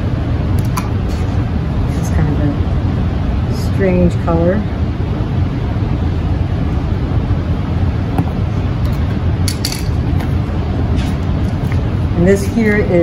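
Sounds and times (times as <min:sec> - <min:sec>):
low room hum: 0:00.0 - 0:13.0.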